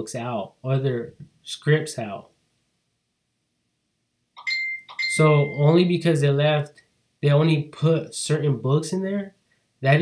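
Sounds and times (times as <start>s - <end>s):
high electronic beep tone: 4.4s - 5.8s.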